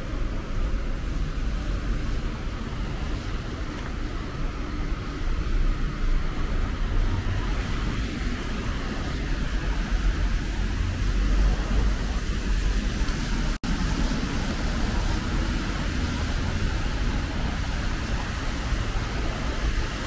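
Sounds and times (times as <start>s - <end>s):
tyres hissing on wet road: 0.0s - 20.0s.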